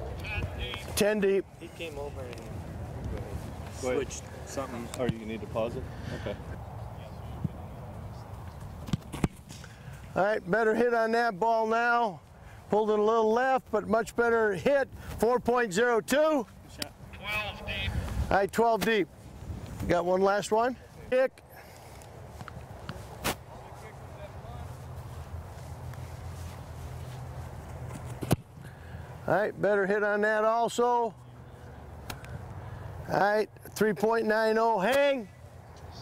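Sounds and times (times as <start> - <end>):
foot kicking football: 8.4 - 10.0, 22.1 - 28.8.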